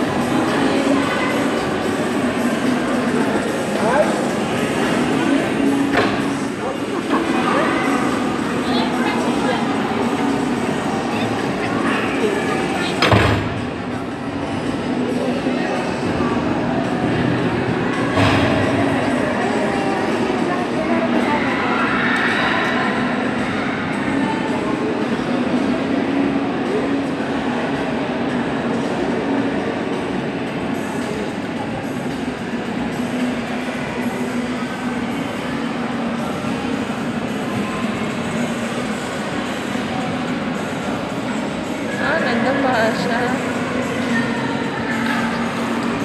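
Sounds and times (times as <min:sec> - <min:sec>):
busy ice rink din: 0:00.0 - 0:46.0.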